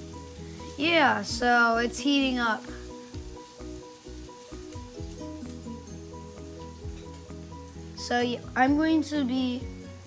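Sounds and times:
faint steady hiss: 0.0 - 10.0
soft background music: 0.0 - 10.0.

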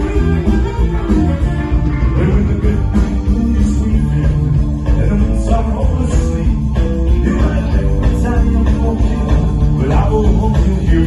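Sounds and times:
live ska band playing: 0.0 - 11.0.

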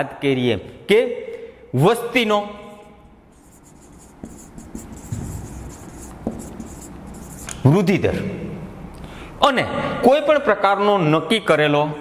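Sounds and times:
marker scratching on whiteboard: 3.3 - 7.6.

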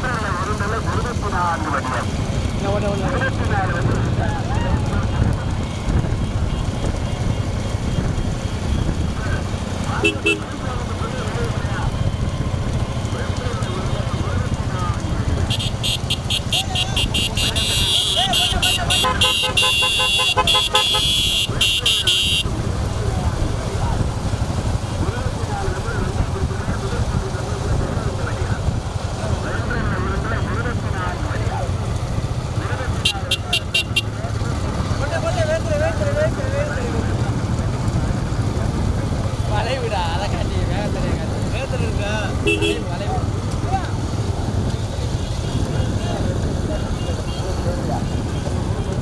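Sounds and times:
motorcycle engines running: 0.0 - 49.0
pulsing horn: 9.9 - 10.8, 15.5 - 22.5, 33.0 - 34.2, 42.4 - 43.0
men shouting: 15.6 - 22.4.

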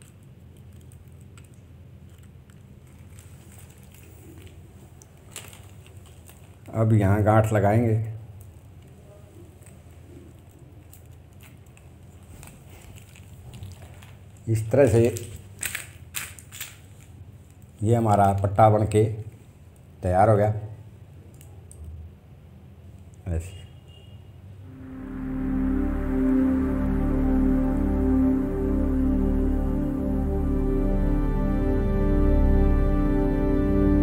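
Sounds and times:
plastic beads clicking: 0.0 - 6.7, 15.1 - 17.7
steady low hum: 24.5 - 34.0.

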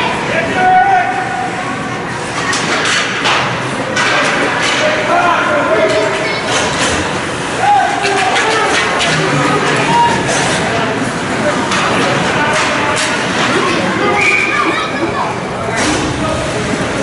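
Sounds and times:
noisy haze of hockey play: 0.0 - 17.0
hockey sticks and puck clacking: 2.4 - 5.1, 7.9 - 10.7, 11.6 - 13.7
voices calling and shouting: 7.5 - 16.5.

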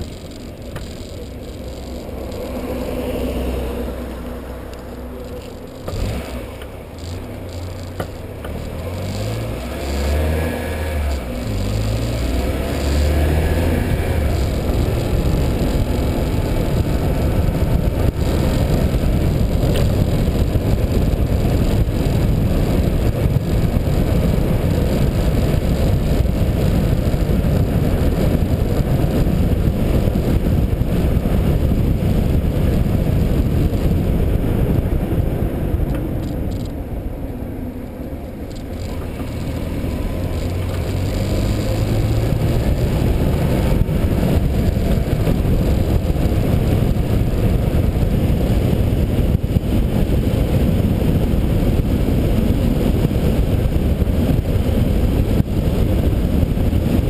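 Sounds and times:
road noise: 0.0 - 57.0
wind rumble on microphone: 0.0 - 57.0.

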